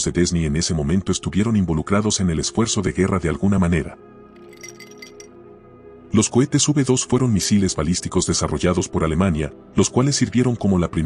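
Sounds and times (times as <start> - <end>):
soft background music: 0.0 - 11.0
light high clinking notes: 4.4 - 5.3.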